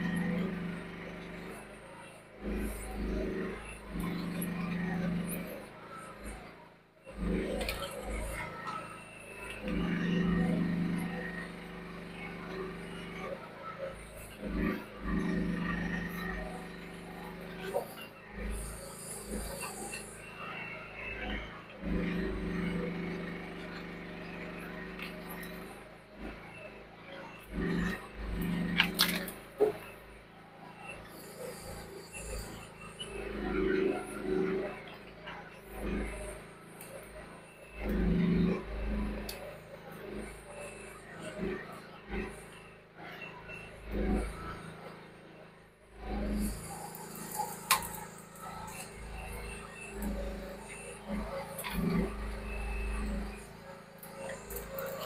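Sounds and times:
excavator engine running: 0.0s - 55.0s.

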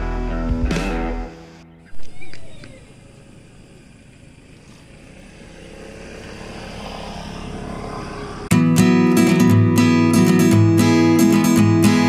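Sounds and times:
strummed acoustic guitar music: 8.5s - 12.0s.

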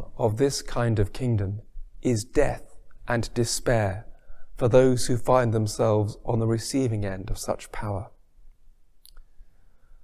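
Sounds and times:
faint room hum: 0.0s - 10.0s
small click: 8.5s - 9.3s.

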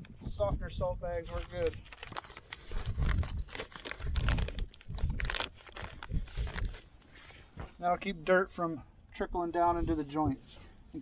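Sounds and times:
plastic bag crinkling: 1.2s - 6.9s.

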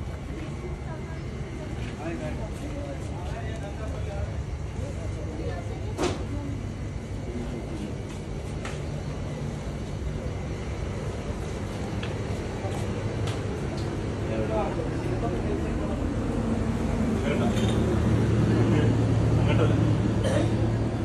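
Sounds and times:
faint voices murmuring: 0.0s - 21.0s.

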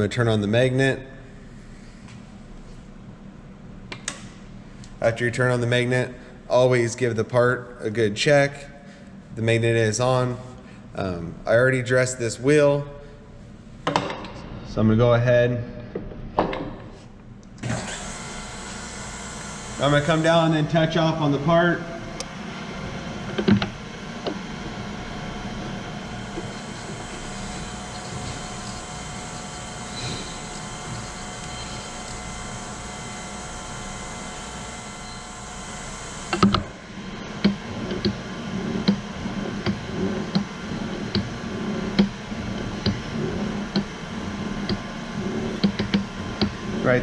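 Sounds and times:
surface grinder wheel humming: 17.6s - 47.0s.

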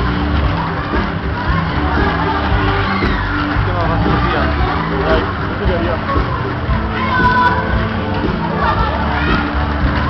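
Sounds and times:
loud fairground music: 0.0s - 10.0s.

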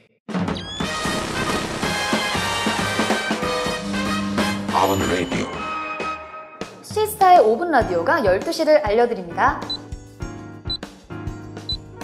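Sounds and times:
background music: 0.3s - 12.0s.

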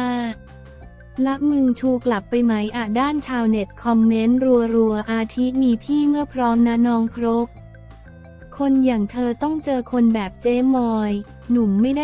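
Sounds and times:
narrator reading: 0.0s - 0.4s, 1.2s - 7.5s, 8.5s - 12.0s
soft background music: 0.0s - 12.0s.

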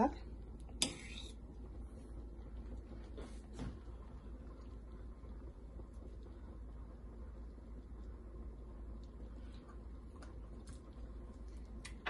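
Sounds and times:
faint soft sounds: 0.0s - 12.0s
steady low hum: 0.0s - 12.0s.

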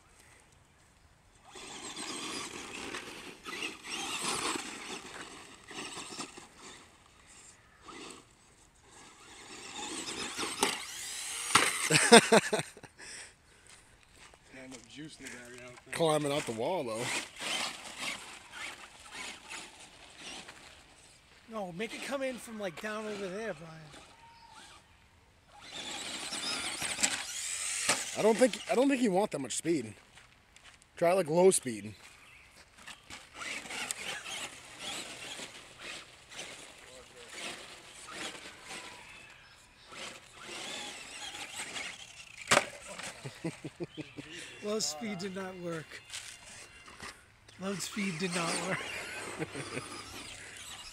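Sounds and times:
toy truck electric motor whining: 1.4s - 12.6s, 15.2s - 21.2s, 21.8s - 29.1s, 32.2s - 50.9s
tyres scrabbling on gravel: 1.4s - 12.6s, 13.6s - 24.8s, 25.6s - 50.9s
toy truck crashing: 1.5s - 7.0s, 8.9s - 12.6s, 16.2s - 20.7s, 25.5s - 28.7s, 32.8s - 43.9s, 47.8s - 50.9s.

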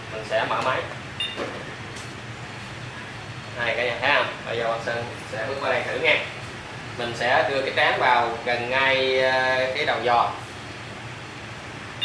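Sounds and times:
steady low hum: 0.0s - 12.0s
short electronic beep: 1.2s - 1.4s.

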